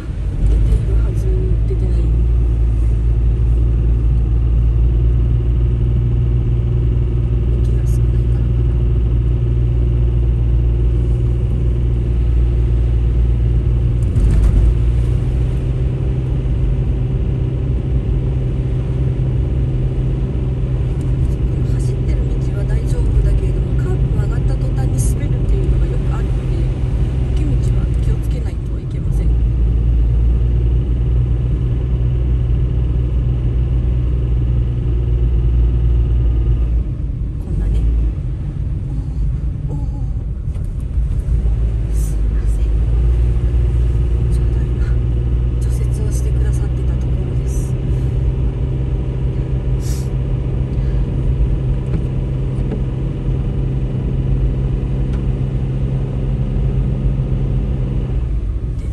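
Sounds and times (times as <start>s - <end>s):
car engine and tyres droning: 0.0s - 58.9s.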